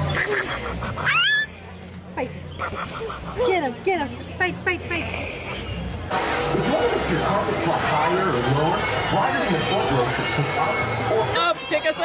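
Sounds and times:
toddler laughing: 0:00.0 - 0:01.5, 0:02.6 - 0:03.8
toddler squealing: 0:01.0 - 0:01.6.

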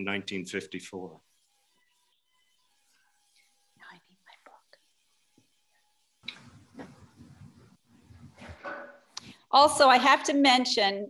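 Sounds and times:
person whispering: 0:03.8 - 0:04.8.

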